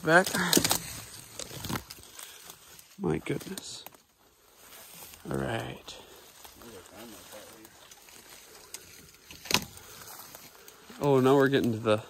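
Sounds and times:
twig snapping: 0.0s - 4.1s, 7.2s - 11.0s
rustling of brush and branches: 0.0s - 12.0s.

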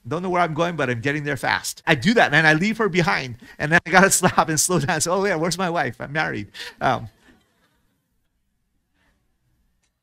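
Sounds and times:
man's voice: 0.0s - 7.1s.

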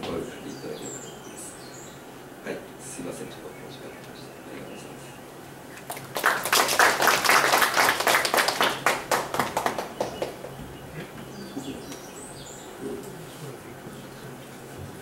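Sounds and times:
audience applauding: 5.9s - 10.6s.

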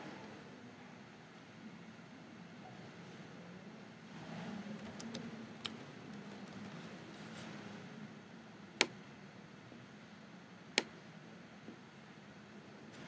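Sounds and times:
low room hum: 0.0s - 13.0s
mouse and keyboard clicks: 4.8s - 7.3s.

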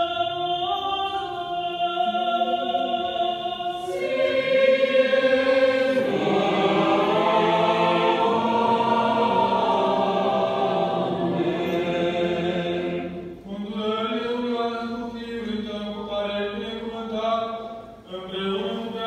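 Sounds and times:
choir chanting long held notes: 2.0s - 13.6s.

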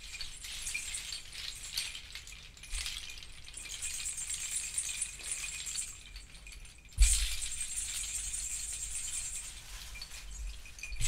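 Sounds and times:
bundle rattle shaking: 0.0s - 11.0s.

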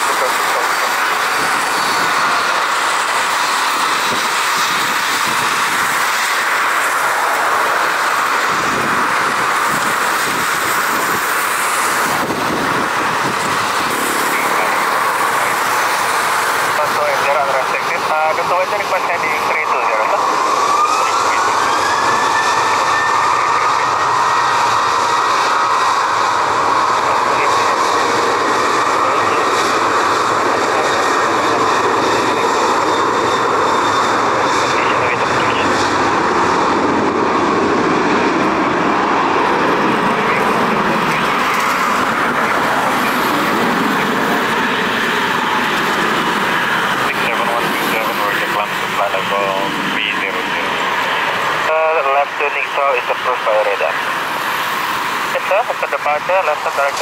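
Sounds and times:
jet engine roar: 0.0s - 57.0s
jet engine whine: 0.0s - 57.0s.

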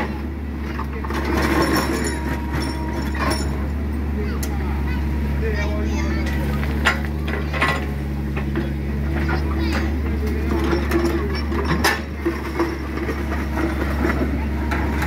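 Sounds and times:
excavator diesel engine running: 0.0s - 15.0s.

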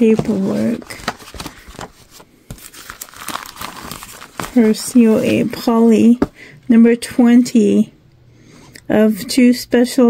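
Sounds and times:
plastic sheet crinkling: 0.0s - 6.2s.

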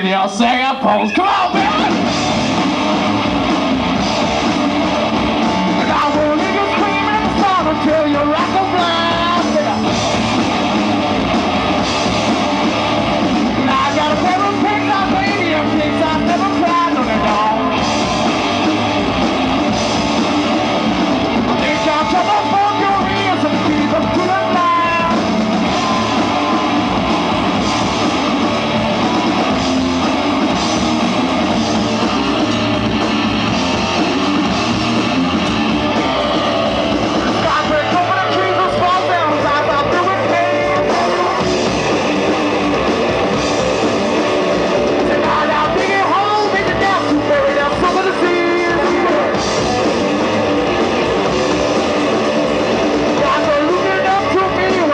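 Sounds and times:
live rock band playing: 0.0s - 54.9s
electric guitar: 1.0s - 54.9s.

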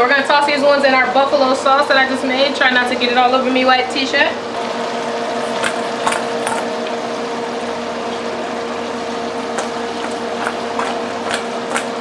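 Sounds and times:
steady hum: 0.0s - 12.0s
oil sizzling and bubbling: 1.1s - 12.0s.

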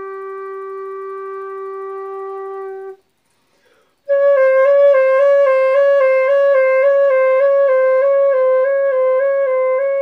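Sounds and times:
flute holding a long note: 0.0s - 3.0s, 4.0s - 10.0s.

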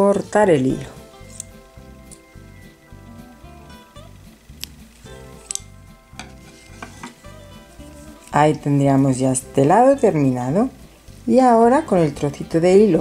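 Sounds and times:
quiet music of held notes: 0.0s - 13.0s.

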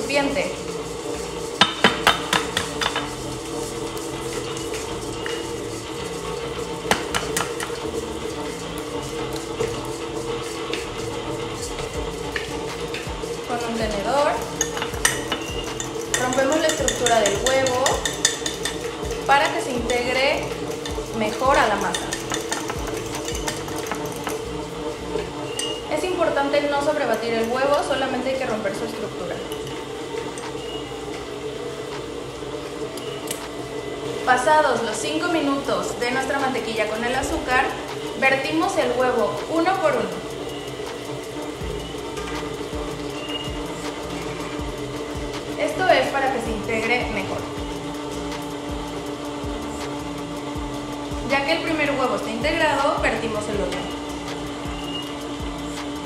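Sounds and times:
electric stand mixer running: 0.0s - 56.0s
fork clinking against glass: 25.5s - 25.8s.

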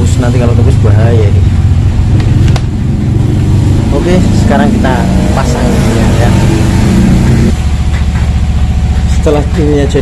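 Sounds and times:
higher machine hum: 0.0s - 10.0s
woodworking machine low throb: 0.0s - 10.0s.

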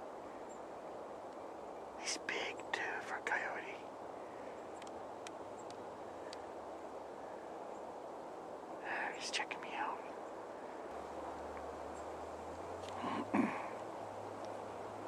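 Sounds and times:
faint background hiss: 0.0s - 15.0s
man whispering: 2.0s - 3.9s, 8.8s - 10.2s, 12.9s - 13.8s
faint clicks: 4.7s - 6.5s, 11.5s - 11.7s, 12.5s - 14.6s.

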